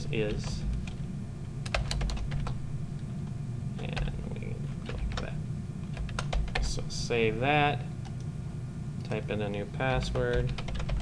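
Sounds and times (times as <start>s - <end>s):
steady low hum: 0.0s - 11.0s
keyboard typing: 1.6s - 2.6s, 5.9s - 6.7s, 10.0s - 11.0s.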